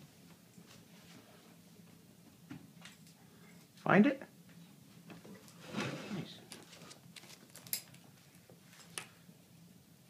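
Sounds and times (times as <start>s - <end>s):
small objects handled on a table: 6.5s - 9.1s.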